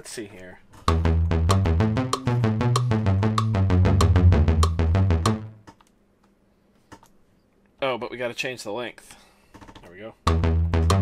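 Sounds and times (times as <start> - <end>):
electronic drum clicks: 0.8 - 5.9, 10.3 - 11.0
stepping bass line: 0.9 - 5.6, 10.3 - 11.0
synth notes: 0.9 - 5.7, 10.3 - 11.0.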